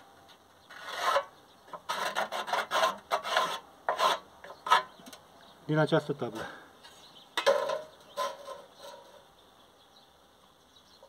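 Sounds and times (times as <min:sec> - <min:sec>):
pencil scratching on rusty steel: 0:00.7 - 0:05.0.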